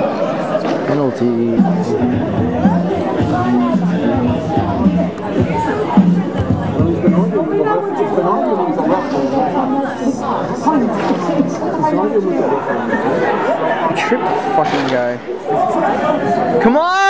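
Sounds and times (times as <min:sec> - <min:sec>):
spectators chattering: 0:00.0 - 0:17.0.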